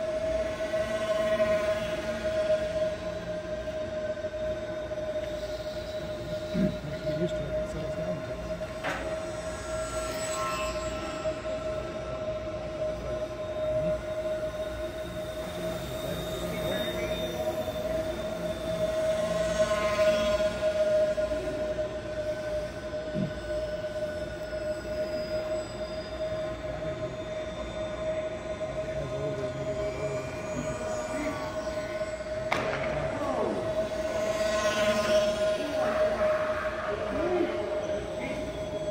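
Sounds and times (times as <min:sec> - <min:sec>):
rc plane motors whining: 0:00.0 - 0:38.9.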